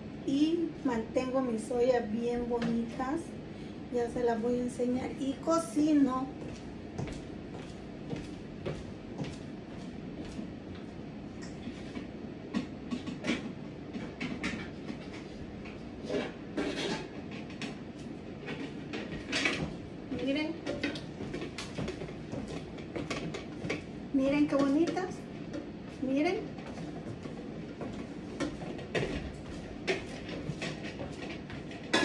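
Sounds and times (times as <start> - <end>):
low background hum: 0.0 - 32.0.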